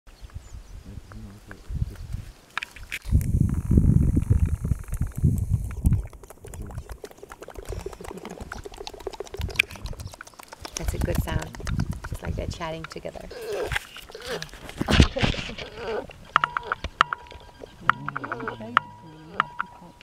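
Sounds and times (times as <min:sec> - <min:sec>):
wind buffeting on microphone: 0:00.2 - 0:19.6
baboon lip-smacking: 0:04.2 - 0:20.0.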